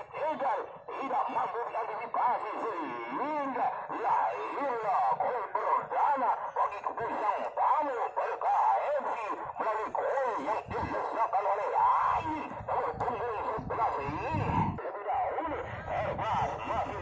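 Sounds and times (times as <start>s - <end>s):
distant voices talking and calling: 0.0s - 17.0s.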